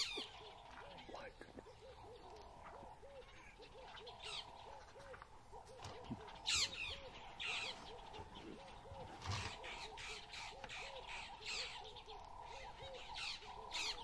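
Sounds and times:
falling bird calls: 0.0s - 14.0s.

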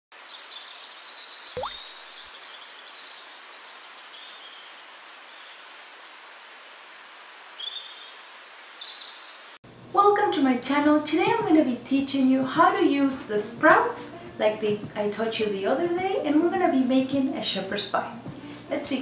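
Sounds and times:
steady hiss: 2.2s - 9.6s.

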